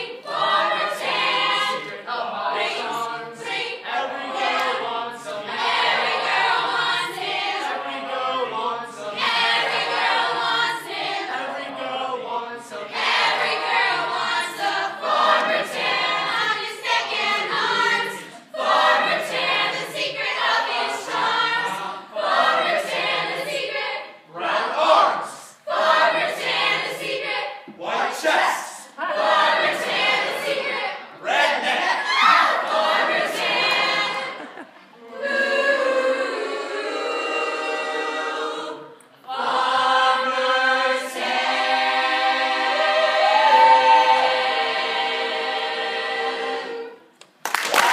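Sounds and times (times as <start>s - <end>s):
young voices singing a cappella: 0.0s - 47.2s.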